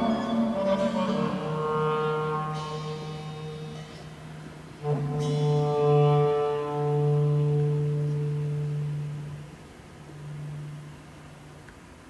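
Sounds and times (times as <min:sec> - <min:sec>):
soft low note: 0:00.0 - 0:11.7.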